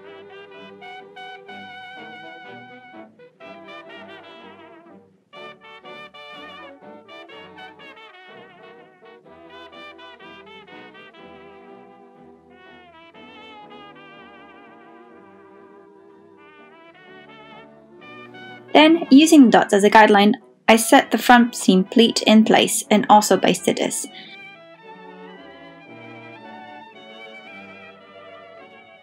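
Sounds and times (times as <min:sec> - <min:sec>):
jazz song with brass melody: 0:00.0 - 0:29.0.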